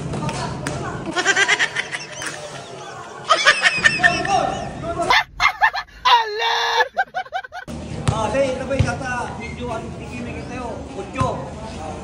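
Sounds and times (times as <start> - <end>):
young voices shouting and shrieking: 5.0 - 7.2.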